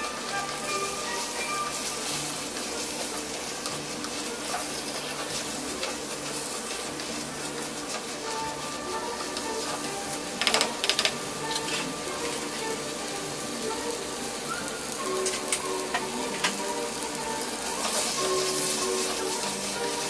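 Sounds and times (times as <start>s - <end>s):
background music with held notes: 0.0s - 20.0s
sizzling hiss: 0.0s - 20.0s.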